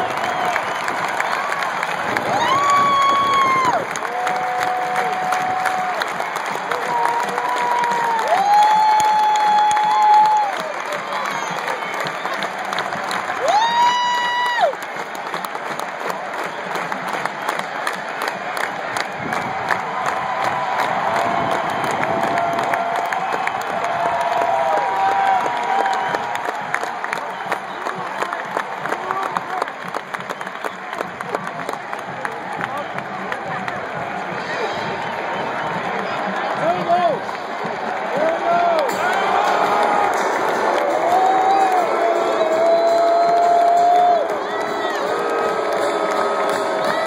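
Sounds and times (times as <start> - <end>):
stadium crowd cheering and applauding: 0.0 - 47.0.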